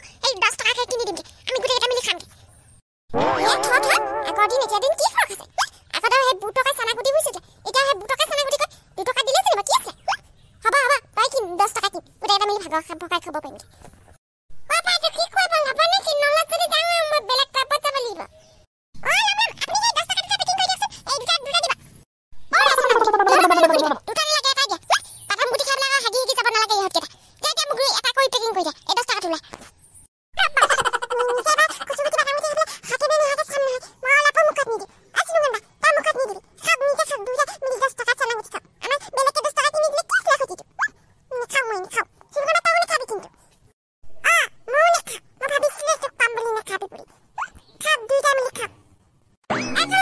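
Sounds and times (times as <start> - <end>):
high-pitched cartoon voice speaking: 0.2 - 2.2, 3.2 - 13.6, 14.7 - 18.3, 19.0 - 21.8, 22.5 - 29.4, 30.4 - 43.3, 44.2 - 48.7, 49.6 - 50.0
cartoon child wailing: 3.2 - 5.0, 22.5 - 24.1.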